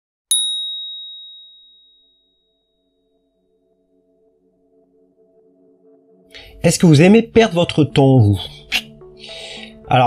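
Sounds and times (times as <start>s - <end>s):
bright bell ding: 0.3s - 2.6s.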